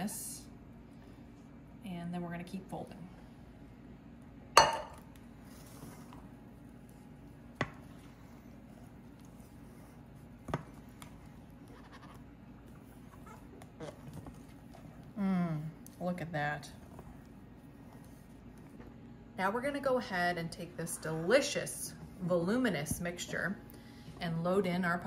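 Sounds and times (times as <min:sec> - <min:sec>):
faint room hum: 0:00.0 - 0:25.0.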